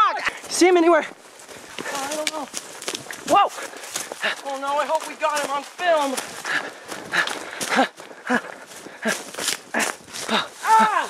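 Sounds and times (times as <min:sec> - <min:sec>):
footfalls on leaf litter: 0:00.3 - 0:11.0
person panting: 0:01.5 - 0:02.2, 0:03.5 - 0:04.8, 0:06.1 - 0:11.0.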